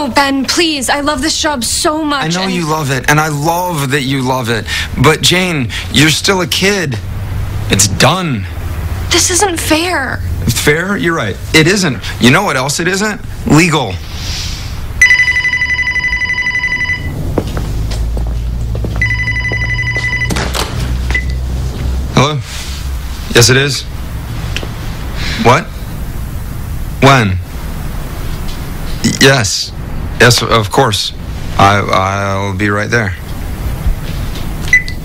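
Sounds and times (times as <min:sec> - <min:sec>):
low steady rumble: 0:00.0 - 0:35.0
short high electronic beep: 0:15.0 - 0:17.1
phone ringtone: 0:15.0 - 0:17.2, 0:19.0 - 0:20.5.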